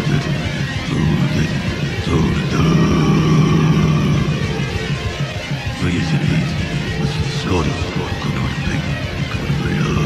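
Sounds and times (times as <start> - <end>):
distorted noise wall: 0.0 - 10.0.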